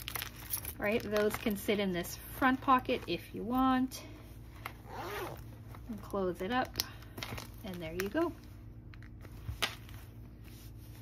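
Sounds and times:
zipper pulled shut: 4.8s - 5.5s.

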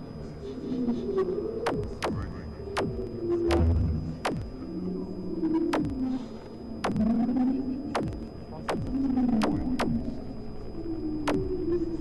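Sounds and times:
low wavering drone: 0.0s - 12.0s
thin high whine: 0.0s - 12.0s
fast falling electronic sweeps: 1.6s - 6.2s, 6.8s - 10.2s.

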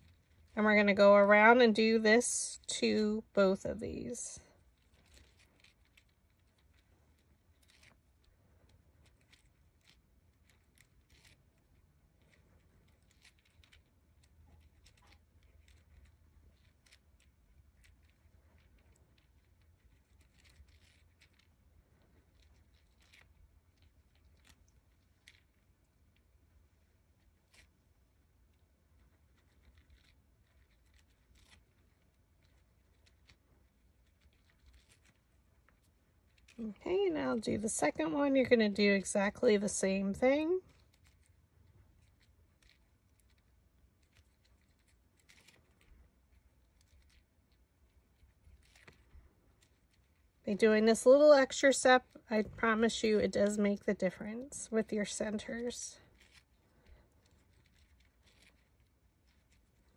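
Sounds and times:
faint low room hum: 0.0s - 59.9s
stylus scratching on paper: 28.5s - 59.9s.

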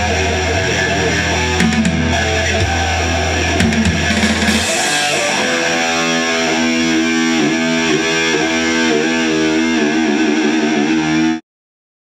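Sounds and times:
distorted electric guitar chord: 0.0s - 11.4s.

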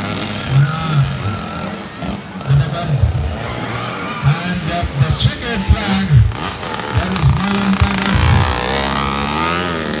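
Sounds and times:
dirt bike engines revving: 0.0s - 10.0s.

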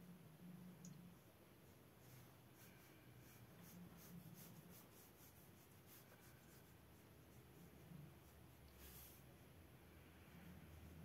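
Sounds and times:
low room hum: 0.0s - 11.0s
paintbrush scratching on paper: 1.1s - 9.7s, 10.3s - 11.0s.

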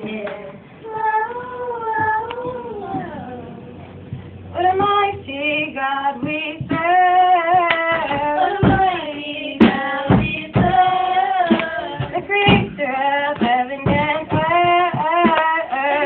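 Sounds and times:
girls singing gospel song: 0.0s - 16.0s.

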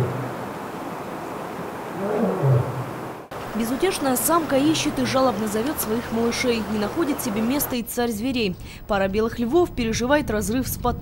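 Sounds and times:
lioness low call: 1.9s - 3.0s.

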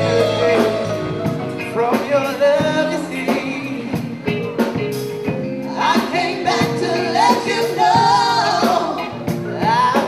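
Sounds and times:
keyboard: 0.0s - 10.0s
steady drum beat: 0.0s - 10.0s
voices singing together: 5.6s - 10.0s.

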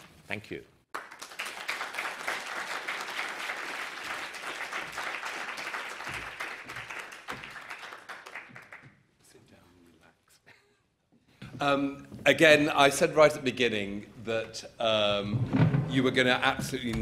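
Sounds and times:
audience applauding: 0.9s - 9.0s.

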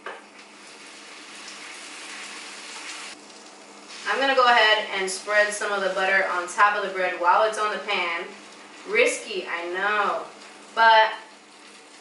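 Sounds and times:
bread sizzling in grill pan: 0.4s - 9.0s, 9.9s - 12.0s.

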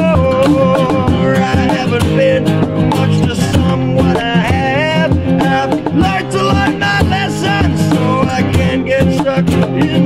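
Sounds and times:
acoustic guitars strummed: 0.0s - 10.0s
cajon beat: 0.0s - 10.0s
man singing: 0.0s - 10.0s.

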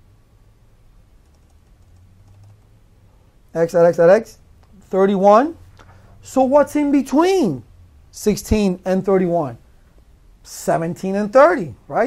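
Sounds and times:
computer keyboard typing: 1.2s - 2.7s.

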